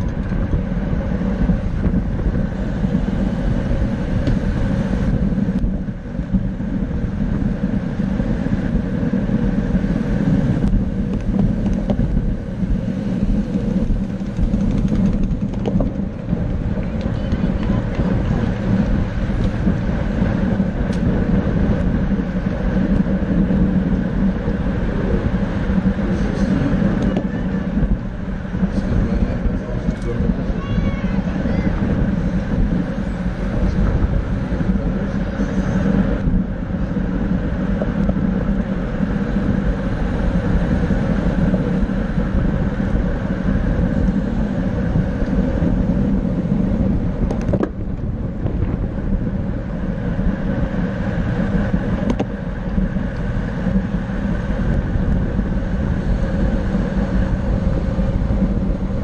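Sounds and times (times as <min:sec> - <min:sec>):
bicycle tyre and road noise: 0:00.0 - 0:59.0
wind buffeting microphone: 0:00.0 - 0:59.0.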